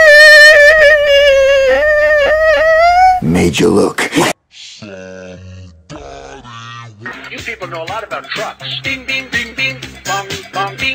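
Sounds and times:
man making drawn-out low vocal sounds: 3.1 - 6.5.

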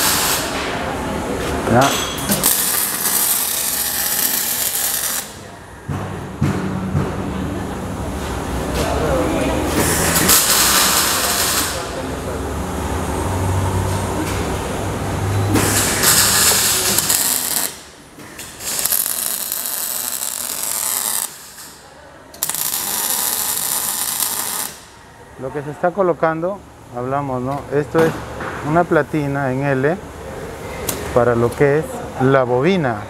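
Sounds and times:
welding arc crackling and hissing: 0.0 - 0.6, 2.3 - 5.4, 9.8 - 12.0, 15.6 - 21.8, 22.4 - 24.9.

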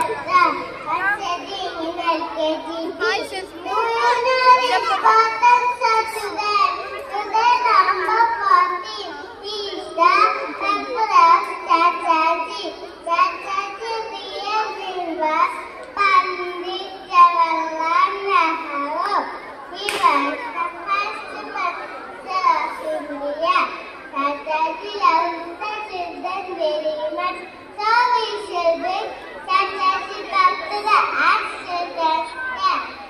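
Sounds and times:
young children talking: 0.0 - 33.0.

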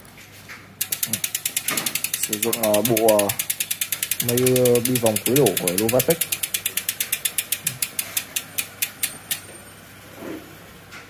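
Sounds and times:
bicycle freehub ticking: 0.8 - 9.5.

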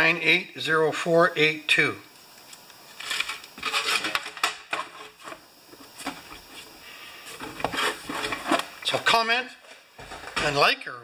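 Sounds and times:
rubbing and rustling handling noise: 2.8 - 10.4
scraping rubs: 3.0 - 9.0.

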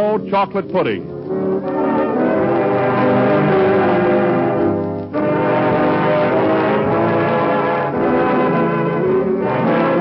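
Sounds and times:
brass sustained chords: 0.0 - 10.0.

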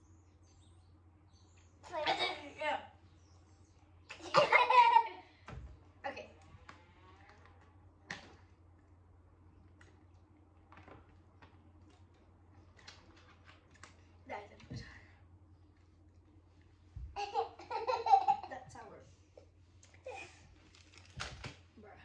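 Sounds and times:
boy laughing: 4.1 - 5.3, 17.2 - 18.6.

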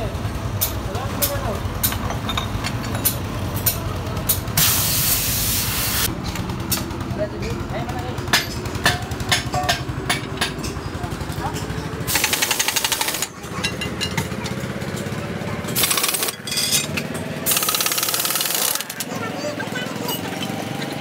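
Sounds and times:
pneumatic impact wrench hammering: 0.6 - 6.9, 11.6 - 15.1, 15.7 - 19.1.

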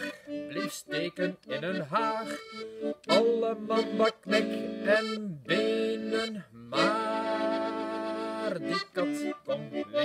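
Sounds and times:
button accordion chord: 0.0 - 10.0
man singing: 0.0 - 10.0.

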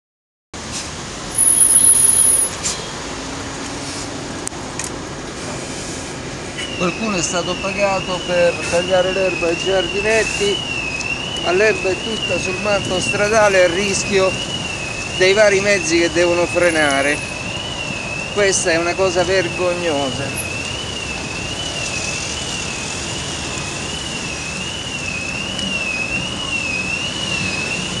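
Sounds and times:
road traffic passing: 0.6 - 28.0
vehicle squeal: 1.3 - 3.0, 6.5 - 10.7
thin high wavering tone: 1.4 - 2.6.

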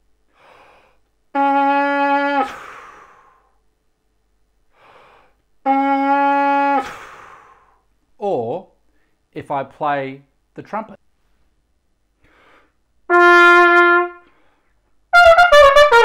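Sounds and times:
breath in: 0.3 - 1.1, 2.5 - 3.6, 4.7 - 5.4, 6.8 - 7.9, 12.2 - 12.8
trumpet mouthpiece held note: 13.1 - 14.4.

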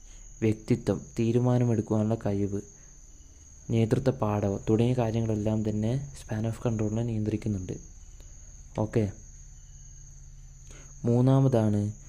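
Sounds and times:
faint high-pitched whine: 0.0 - 12.0
person speaking: 8.7 - 9.3.

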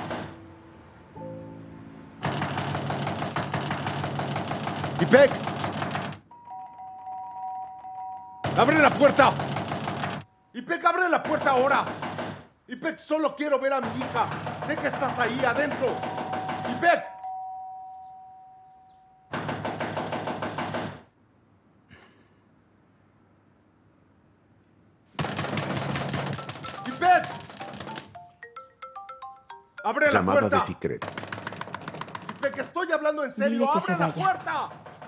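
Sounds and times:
banging on door: 2.2 - 6.2, 8.4 - 10.2, 11.2 - 12.5, 13.8 - 17.1, 19.3 - 21.1, 25.2 - 28.2, 31.0 - 33.0, 34.3 - 35.0
electric doorbell buzzing: 6.3 - 8.6, 16.0 - 19.3.

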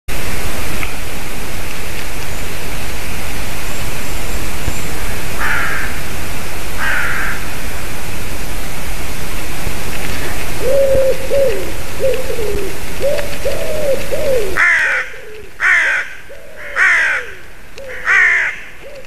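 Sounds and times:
steady hiss: 0.1 - 19.0
crows and jays calling: 5.0 - 6.1, 6.8 - 7.8, 10.2 - 19.0.

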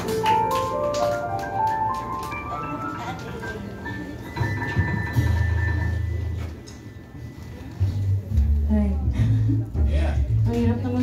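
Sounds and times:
live band playing softly: 0.0 - 9.4.

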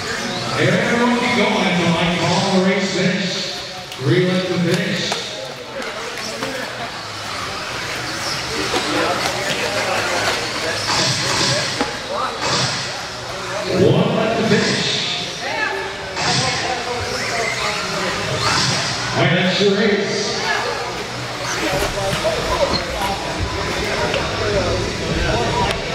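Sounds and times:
rc buggies motors and tyres hissing: 6.0 - 13.7
announcer talking over pa: 13.7 - 15.2, 19.1 - 20.4.

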